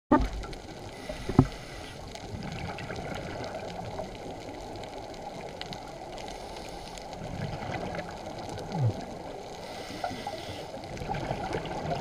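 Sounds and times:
muffled underwater rumble: 0:00.1 - 0:12.0.

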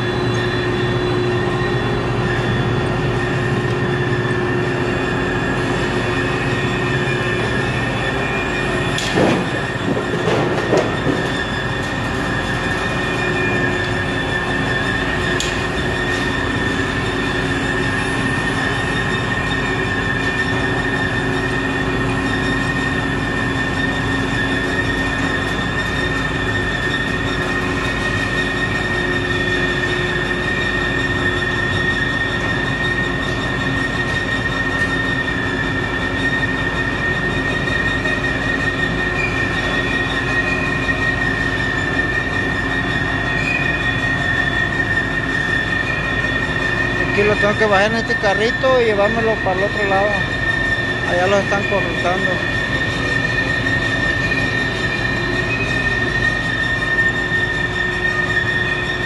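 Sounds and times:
crane drive high-pitched whine: 0:00.0 - 0:59.0.

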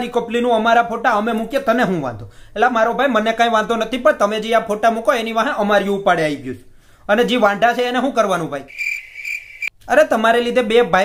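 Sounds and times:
cricket chirping trill: 0:08.7 - 0:09.7.

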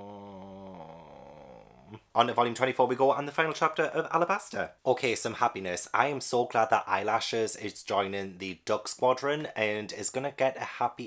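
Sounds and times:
man humming hesitantly: 0:00.0 - 0:02.1.

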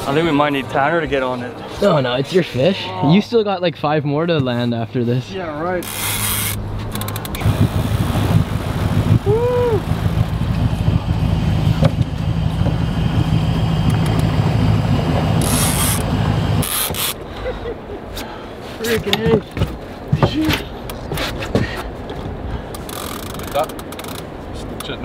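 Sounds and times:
fishing reel whirring: 0:05.8 - 0:08.2, 0:15.4 - 0:16.0, 0:16.6 - 0:17.2, 0:22.8 - 0:24.2.

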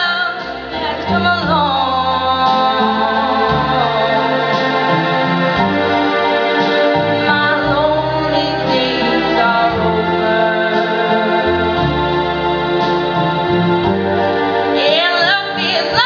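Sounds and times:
woman singing a ballad: 0:00.0 - 0:05.0, 0:07.1 - 0:11.8, 0:14.8 - 0:16.0
instrumental accompaniment with bass: 0:00.0 - 0:16.0.

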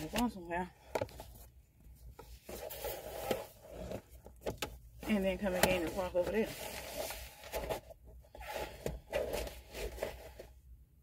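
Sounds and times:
faint rubbing and rustling: 0:01.1 - 0:04.3, 0:04.9 - 0:10.6.

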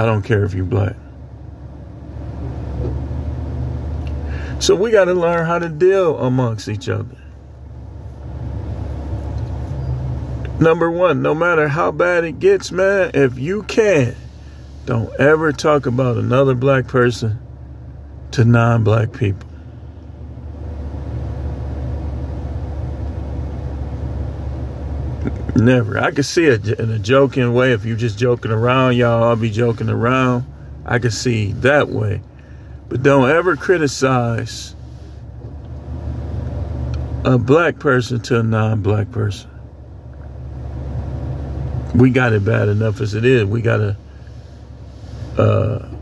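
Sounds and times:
vehicle rumble inside car: 0:00.0 - 0:46.0.

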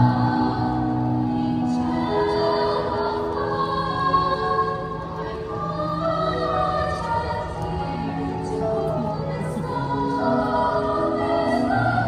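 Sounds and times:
girls' choir singing: 0:00.0 - 0:12.0.

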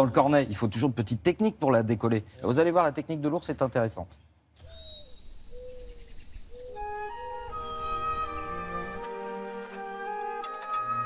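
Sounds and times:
high bird chirps: 0:04.6 - 0:09.1
soft flute melody: 0:06.6 - 0:11.0.

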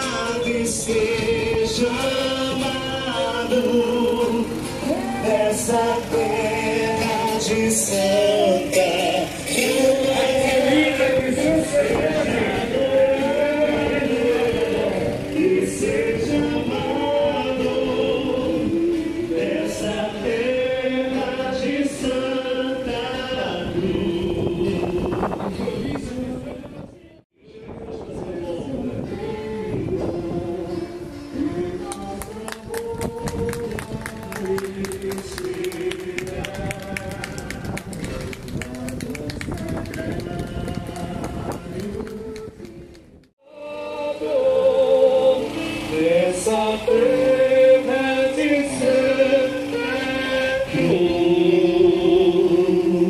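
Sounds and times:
choir singing a hymn: 0:00.0 - 0:26.9, 0:43.4 - 0:53.0.

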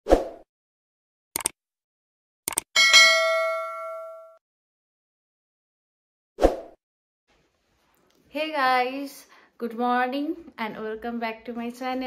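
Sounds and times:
quick clicks: 0:01.4 - 0:01.6, 0:02.5 - 0:02.7
notification bell chime: 0:02.8 - 0:04.4.

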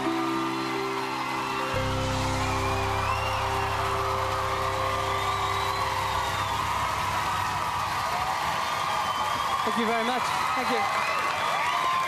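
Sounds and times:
audience cheering and whooping: 0:00.0 - 0:12.0
band final chord ringing: 0:01.7 - 0:08.2.

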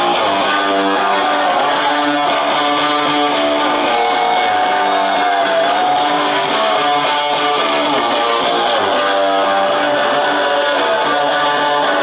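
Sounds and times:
bass guitar: 0:00.0 - 0:12.0
rock band playing: 0:00.0 - 0:12.0
strummed electric guitars: 0:00.0 - 0:12.0.

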